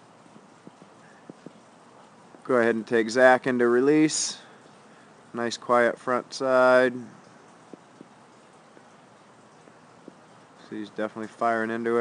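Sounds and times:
faint steady hiss: 0.0 - 12.0
small faint ticks: 0.2 - 2.5, 7.2 - 11.4.

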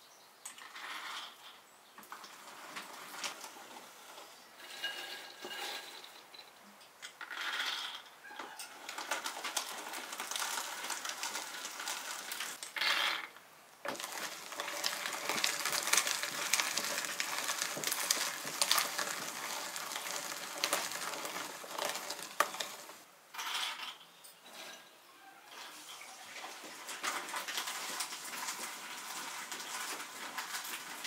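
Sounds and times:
meat grinder crushing nuts: 8.7 - 12.6, 13.9 - 23.0, 26.8 - 31.0.

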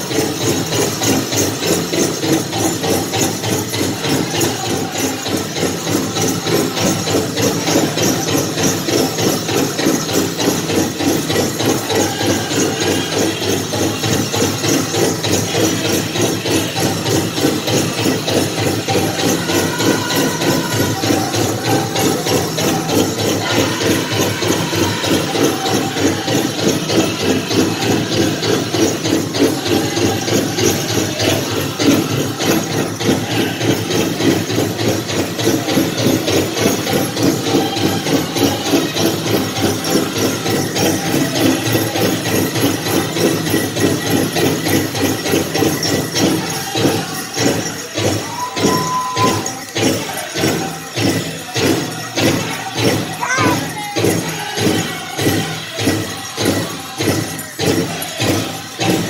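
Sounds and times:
big drum fast beat: 0.0 - 59.0
group singing: 0.0 - 59.0.

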